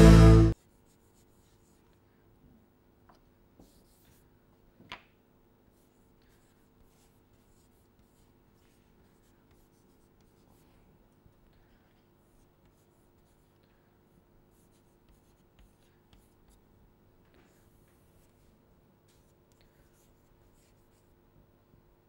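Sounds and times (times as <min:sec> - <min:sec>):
chalk scratching on chalkboard: 0:00.5 - 0:02.0, 0:03.6 - 0:04.2, 0:05.7 - 0:10.8, 0:11.6 - 0:13.6, 0:14.5 - 0:16.6, 0:17.4 - 0:21.1.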